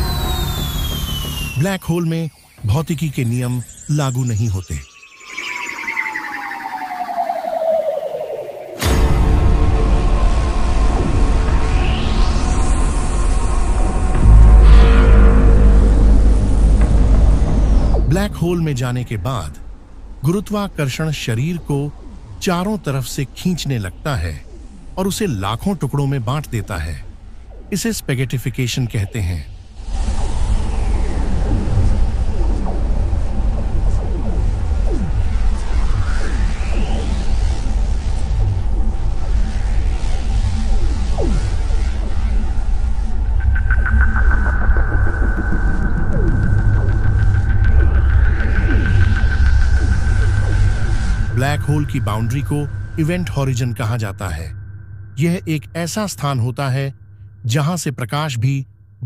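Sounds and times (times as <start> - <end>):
sustained high tone: 0.0 - 10.2, 43.3 - 58.7
deep rumbling drone: 0.0 - 20.2, 29.0 - 57.5
faint steady tones: 0.0 - 59.0.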